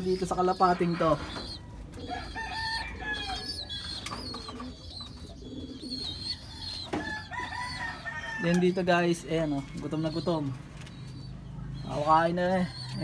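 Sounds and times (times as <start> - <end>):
birds calling and chirping: 0.0 - 13.0
pigeon cooing: 0.0 - 13.0.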